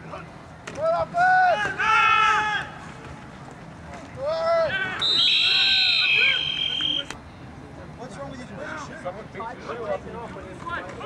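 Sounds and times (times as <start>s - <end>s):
voices shouting: 4.2s - 7.2s
referee whistles blowing: 5.0s - 7.2s.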